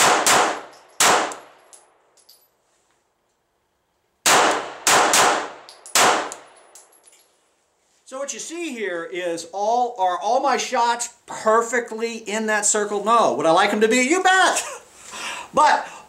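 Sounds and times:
pistol shots: 0.0s - 1.6s, 4.2s - 6.5s.

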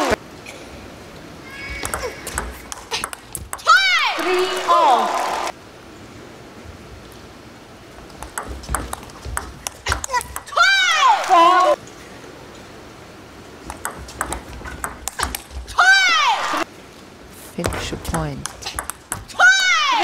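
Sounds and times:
table tennis ball clicks: 1.8s - 3.7s, 8.1s - 10.6s, 13.7s - 15.6s, 17.6s - 19.3s
player shouting: 3.6s - 5.5s, 9.9s - 11.8s, 15.7s - 16.6s, 19.3s - 20.0s.

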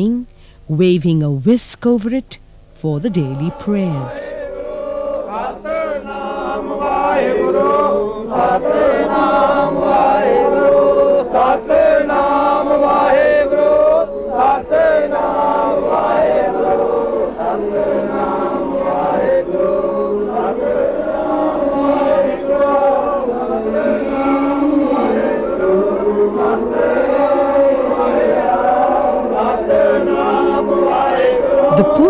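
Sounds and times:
men chanting together: 3.0s - 32.0s.

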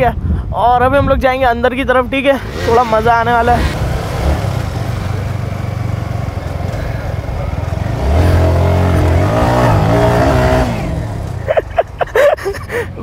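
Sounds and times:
motorcycle engines running: 2.0s - 13.0s
motorcycle engine revving: 2.4s - 12.0s.

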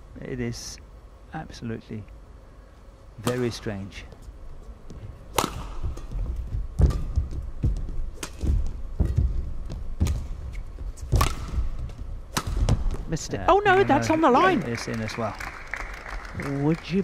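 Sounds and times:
footsteps thudding on court: 4.8s - 13.1s
rackets striking shuttlecock: 5.3s - 7.4s, 8.1s - 9.4s, 10.0s - 13.0s.

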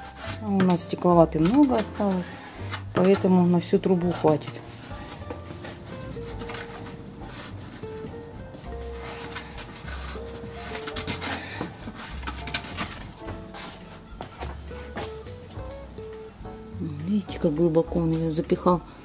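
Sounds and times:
wooden stick scraping in chimney: 0.0s - 16.1s
background music: 0.0s - 19.0s.

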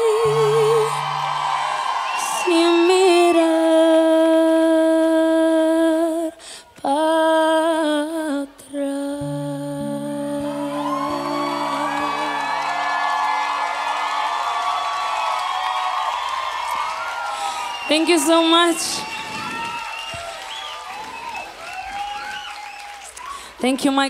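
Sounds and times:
audience cheering: 0.0s - 4.4s, 10.4s - 23.9s
woman singing high notes: 0.0s - 12.9s.

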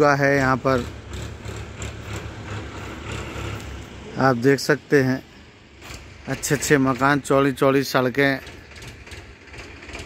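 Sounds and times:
low rumble of outdoor background: 0.0s - 10.0s.

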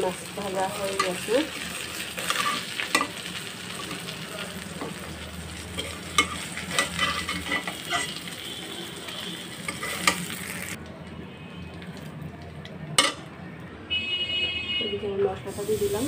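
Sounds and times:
fish sizzling in hot oil: 0.0s - 10.8s, 15.5s - 16.0s
metal spatula scraping pan: 2.0s - 3.2s, 5.6s - 8.4s, 9.1s - 10.5s.

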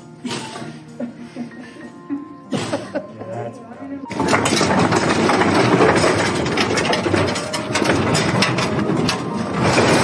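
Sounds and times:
metal cage rolling over pavement: 4.1s - 10.0s
small metal clanks: 4.1s - 10.0s.

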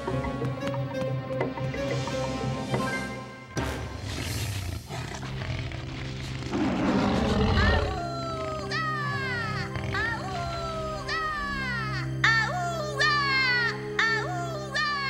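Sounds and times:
orchestral cartoon music: 0.0s - 15.0s
cartoon dinosaur roar: 4.7s - 11.0s.

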